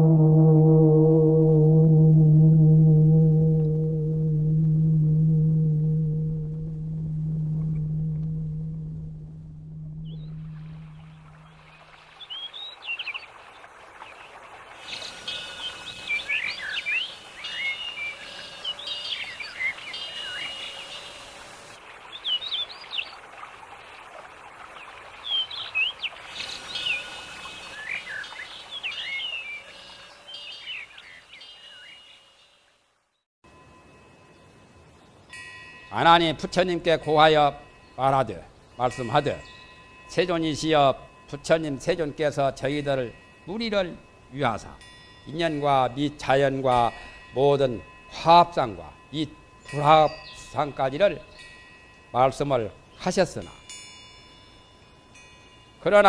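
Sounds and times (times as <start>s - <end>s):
low deep tone: 0.0s - 12.0s
birds chirping and singing: 14.3s - 21.3s, 25.3s - 32.2s.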